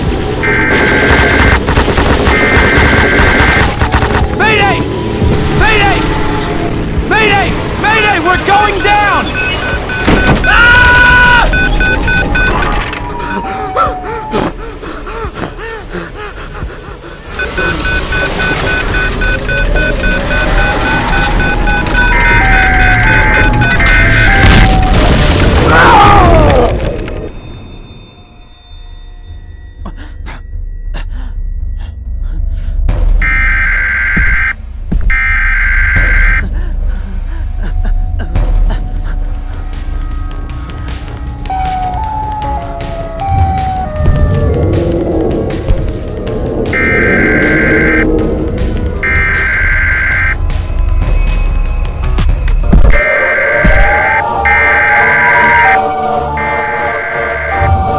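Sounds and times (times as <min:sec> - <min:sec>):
rapid even beeping: 0:07.9 - 0:12.6, 0:17.2 - 0:24.6, 0:46.7 - 0:50.5
loud siren-like tone: 0:08.4 - 0:14.6, 0:17.4 - 0:25.4, 0:33.2 - 0:36.4, 0:41.4 - 0:45.0, 0:46.6 - 0:50.4, 0:52.9 - 0:57.9.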